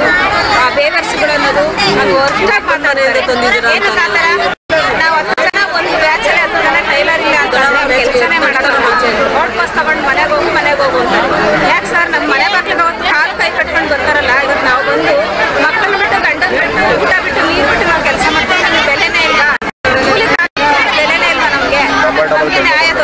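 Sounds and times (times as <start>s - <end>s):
people talking loudly at once: 0.0s - 23.0s.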